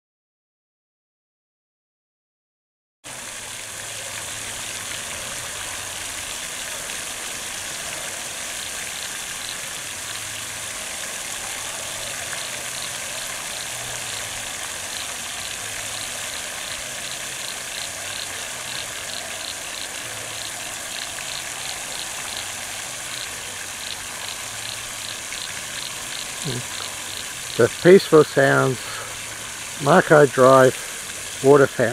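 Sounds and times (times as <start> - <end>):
fountain spray falling on water: 3.1 - 31.9.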